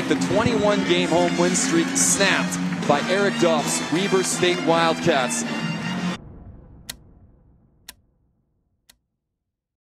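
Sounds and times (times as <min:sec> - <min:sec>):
low rumble: 0:06.1 - 0:09.0.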